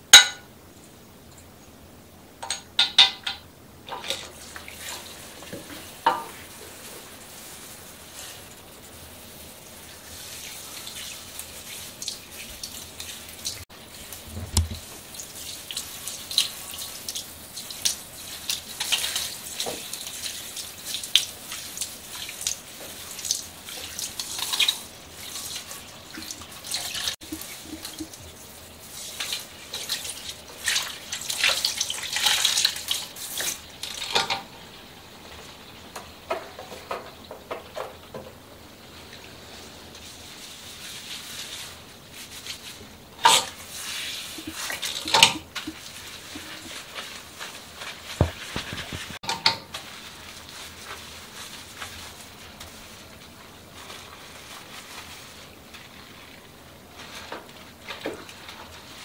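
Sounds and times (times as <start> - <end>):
shower sprayer water splashing: 3.8 - 59.0
hands working wet hair: 3.9 - 34.0, 39.1 - 59.0.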